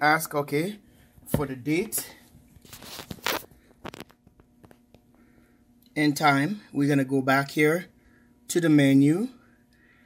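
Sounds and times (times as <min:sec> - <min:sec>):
handling rustle: 0:02.0 - 0:05.0.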